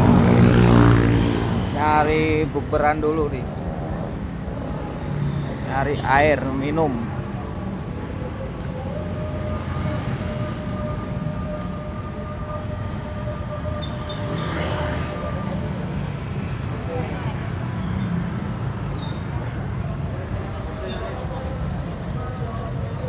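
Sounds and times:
steady engine hum: 0:00.0 - 0:05.4
low rumble of cars and motorbikes: 0:00.0 - 0:23.0.

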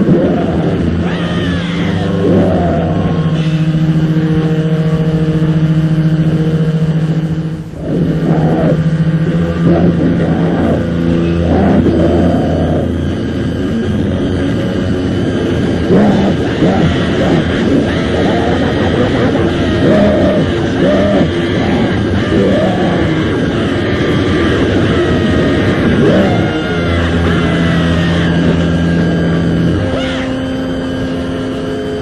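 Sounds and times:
harsh shouted vocals: 0:00.0 - 0:06.2, 0:07.7 - 0:13.6, 0:15.5 - 0:29.9
distorted metal guitar: 0:00.0 - 0:32.0.

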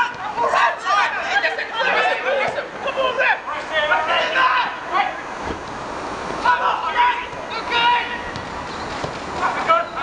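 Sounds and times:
footballers shouting: 0:00.0 - 0:05.5, 0:06.2 - 0:10.0
steady outdoor hiss: 0:00.0 - 0:10.0.

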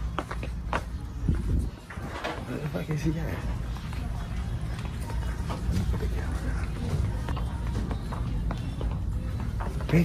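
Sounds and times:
footsteps: 0:00.0 - 0:02.7, 0:03.3 - 0:10.0.

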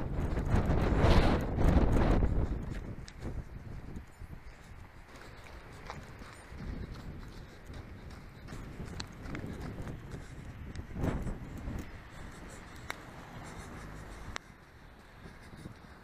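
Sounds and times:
wind rumbling on microphone: 0:00.0 - 0:16.0.

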